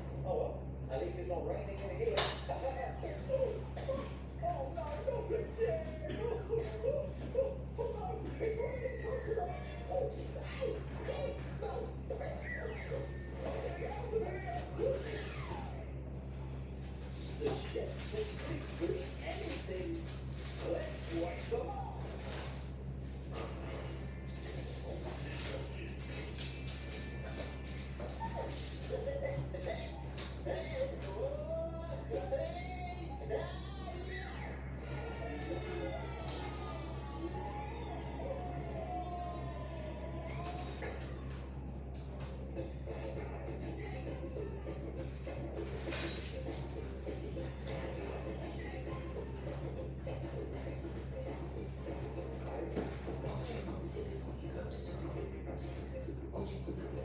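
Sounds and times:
steady low hum: 0.0 - 57.0
television music and sound effects: 0.0 - 57.0.

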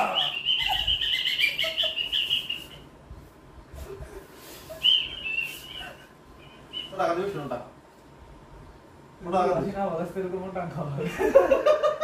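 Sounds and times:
high warbling whistle: 4.7 - 7.3.

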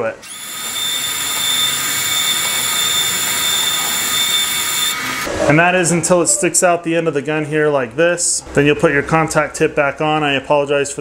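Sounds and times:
welder wire feed motor whine: 0.2 - 5.3.

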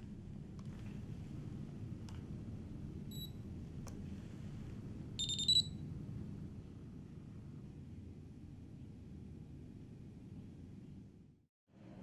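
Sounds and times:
faint low hum: 0.0 - 12.0
rapid chirping beeps: 5.2 - 5.8.

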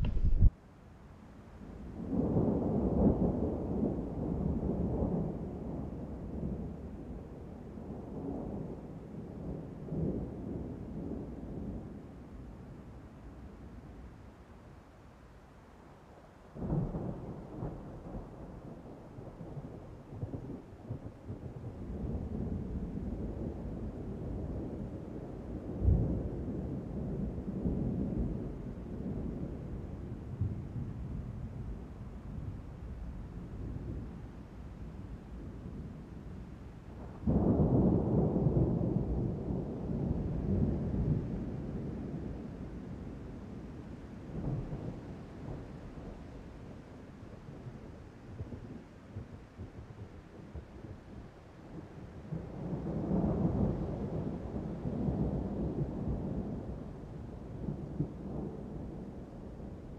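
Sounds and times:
wind buffeting microphone: 0.0 - 0.5.

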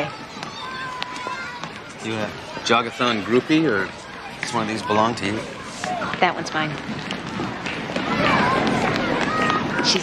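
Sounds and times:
children shouting and chattering: 0.0 - 10.0.

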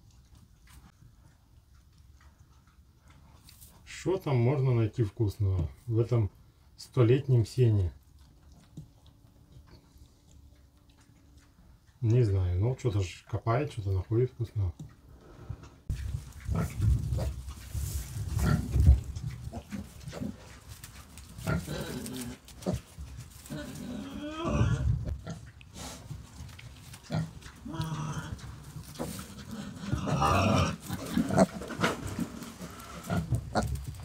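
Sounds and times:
piglets grunting: 21.4 - 26.0, 27.0 - 33.8.

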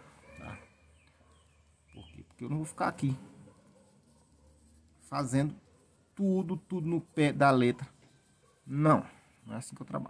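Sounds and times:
pencil scratching on paper: 2.3 - 10.0.

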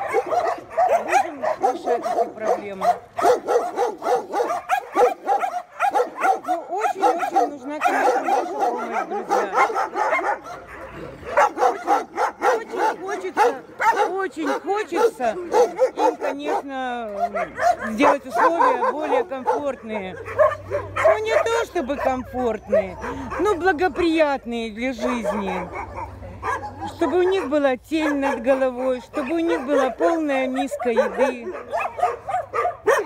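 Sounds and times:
dogs yipping: 0.0 - 24.3, 24.9 - 33.0
many dogs barking: 0.0 - 33.0.

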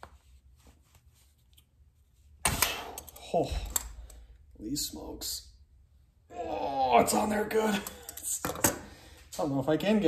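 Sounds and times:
man grunting oh: 6.3 - 7.4
effortful breathing: 7.8 - 9.4.

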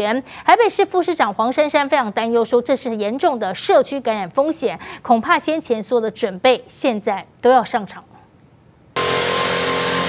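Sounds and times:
mist sprayer hissing: 9.0 - 10.0.

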